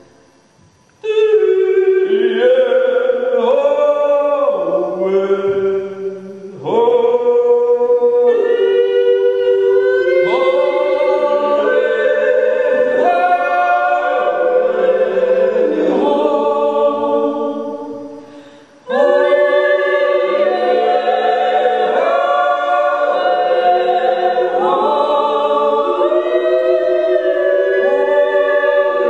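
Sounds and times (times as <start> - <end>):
voices yodeling in harmony: 1.0 - 29.0.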